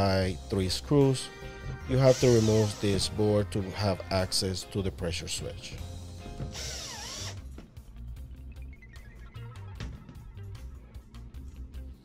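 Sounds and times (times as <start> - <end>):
power tool whirring: 2.0 - 3.0, 6.4 - 7.4.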